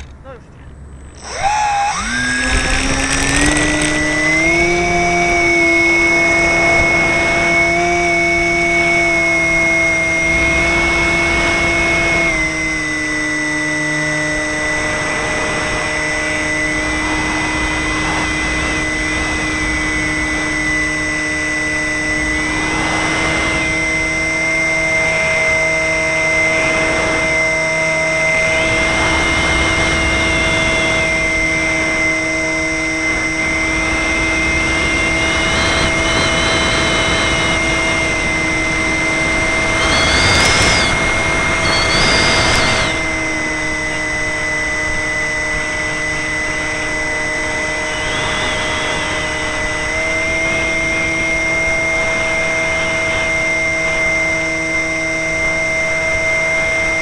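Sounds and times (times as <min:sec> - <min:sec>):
electric motor and propeller whine: 0:00.0 - 0:57.0.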